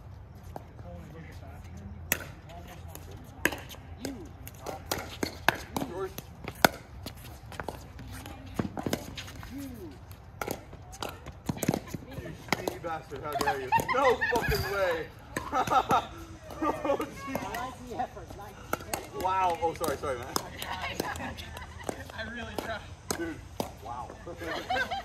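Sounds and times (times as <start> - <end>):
paddles hitting plastic ball: 10.3 - 14.4, 18.7 - 23.8.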